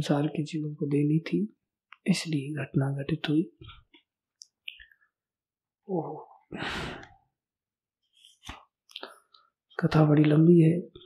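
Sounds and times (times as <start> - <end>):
breathy exhale: 6.5 - 7.2.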